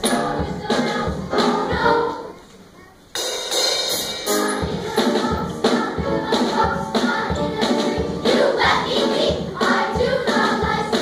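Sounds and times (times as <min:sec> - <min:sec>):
drum kit: 0:00.0 - 0:02.2, 0:03.1 - 0:11.0
children's choir singing: 0:00.0 - 0:02.5, 0:03.9 - 0:11.0.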